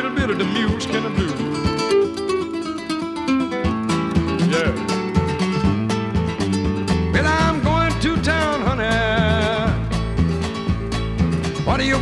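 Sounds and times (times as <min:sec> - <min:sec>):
bass line: 0:00.0 - 0:12.0
fingerpicked guitar: 0:00.0 - 0:12.0.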